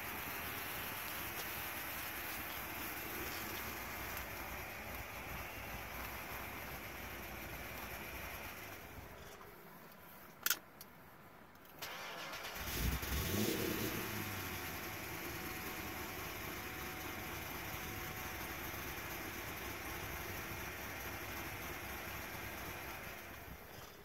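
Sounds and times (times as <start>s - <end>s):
car engine starting and idling: 0.0s - 9.6s, 11.7s - 24.0s.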